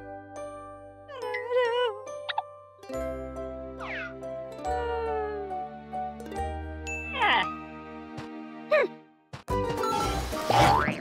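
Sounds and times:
cartoon music: 3.8 - 5.7.

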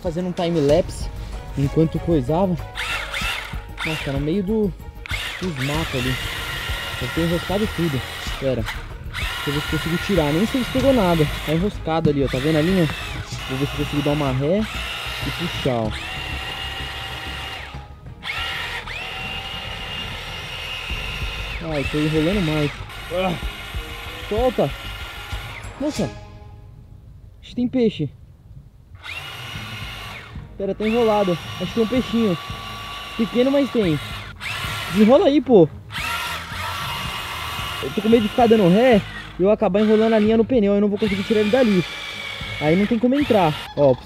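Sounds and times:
small electric motor whining: 0.0 - 26.2, 29.0 - 44.0.

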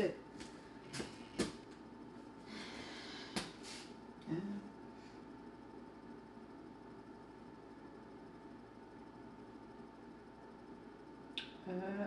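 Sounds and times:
low hum: 0.0 - 12.0
person saying um: 4.2 - 4.7.

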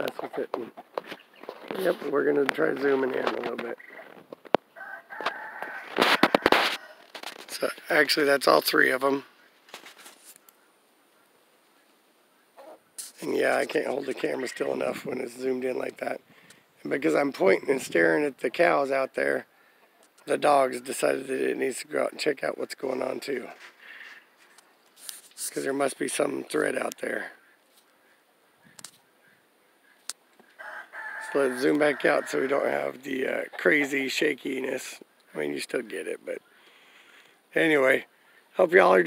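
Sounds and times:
rooster crowing: 4.7 - 7.2, 30.6 - 32.7.

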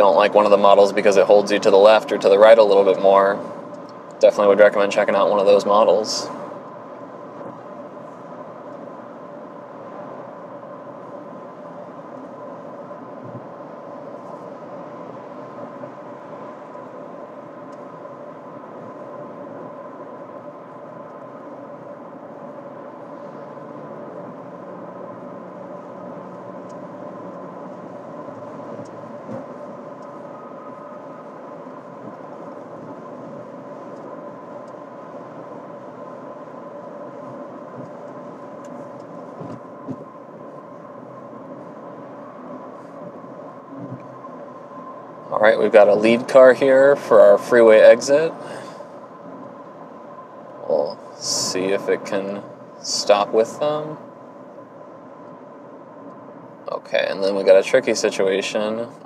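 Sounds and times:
faint steady hum: 0.0 - 59.0
road and tyre noise in car cabin: 0.0 - 59.0.

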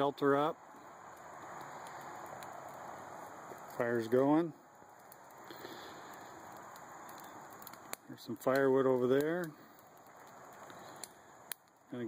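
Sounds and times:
faint outdoor background hiss: 0.0 - 12.0
sharp clicks: 5.0 - 11.8.

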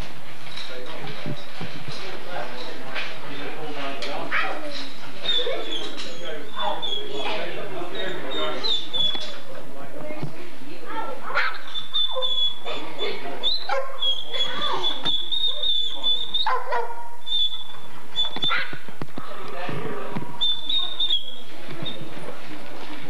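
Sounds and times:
dog whining: 4.3 - 9.5, 11.3 - 18.8, 20.4 - 22.4
dogs yipping and whimpering: 4.3 - 9.6, 11.3 - 18.9, 20.4 - 22.4.

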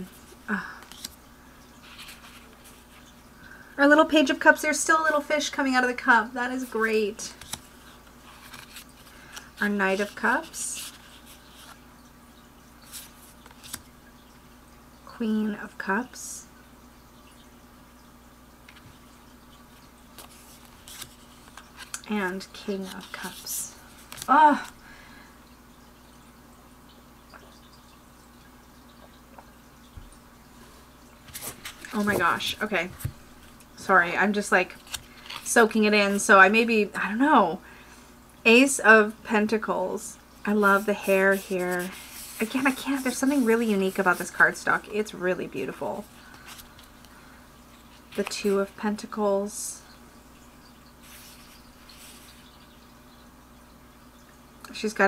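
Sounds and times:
faint hum: 0.0 - 55.0
cards rustling in hands: 0.1 - 1.2, 1.8 - 3.1, 6.7 - 11.8, 12.8 - 13.9, 20.1 - 24.8, 31.3 - 33.7, 34.6 - 36.3, 40.5 - 44.6, 46.0 - 47.1, 47.9 - 48.7, 51.0 - 52.5.

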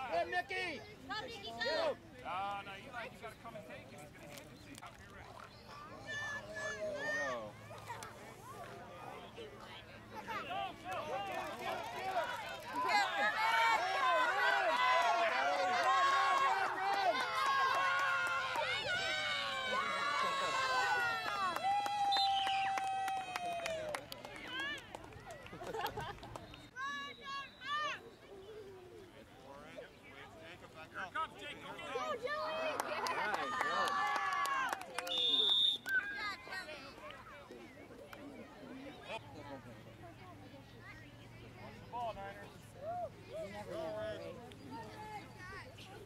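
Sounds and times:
crowd shouting and cheering: 10.2 - 25.8, 31.7 - 37.2
referee's whistle blast: 35.1 - 35.9.

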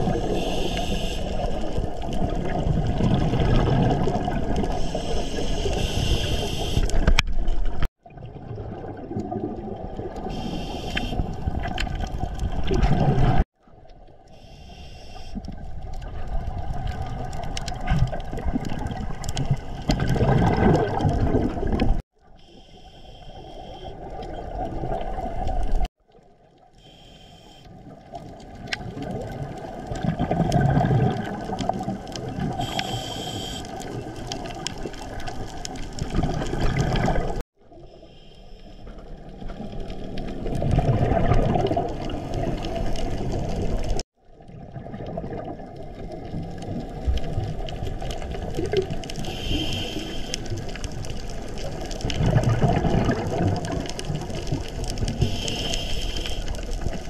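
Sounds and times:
underwater bubbles gurgling: 0.0 - 27.0, 27.6 - 38.0, 38.7 - 57.0.

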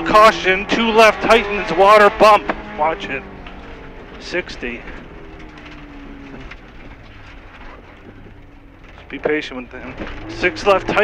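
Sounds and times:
car engine running: 0.0 - 11.0
gravel and road noise: 0.0 - 11.0.

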